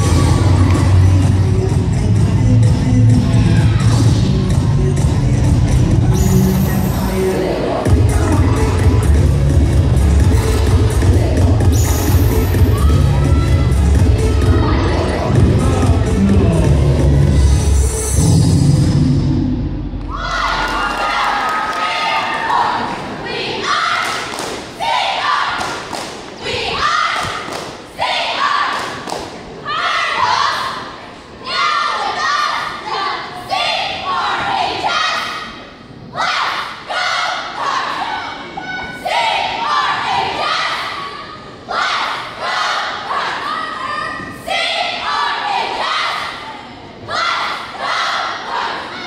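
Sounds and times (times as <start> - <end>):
cheerleaders chanting: 0.0 - 49.0.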